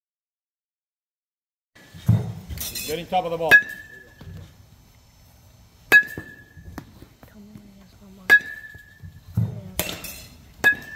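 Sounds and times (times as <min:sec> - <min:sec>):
metal bat pinging baseball: 0:02.1 - 0:04.4, 0:05.9 - 0:06.9, 0:08.2 - 0:10.9.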